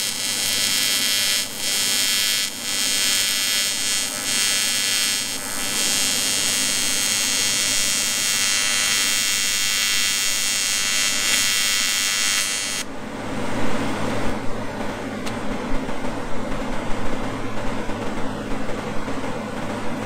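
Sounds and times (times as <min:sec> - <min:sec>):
welding arc buzzing: 0:00.0 - 0:12.9.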